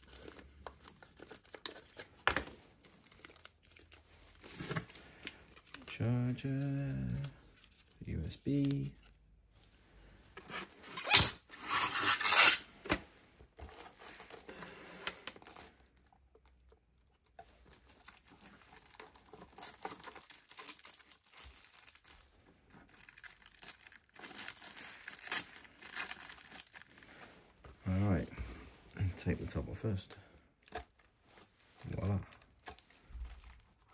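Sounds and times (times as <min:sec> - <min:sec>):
plastic packaging rustling and tearing: 0:00.0 - 0:09.1, 0:10.5 - 0:28.2, 0:30.6 - 0:33.9.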